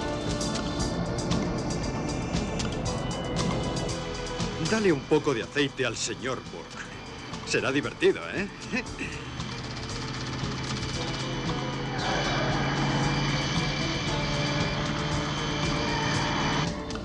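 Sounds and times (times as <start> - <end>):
car engine and road noise: 0.0 - 17.0
dramatic background music: 0.0 - 17.0
rush of engine and tyre noise: 0.0 - 17.0.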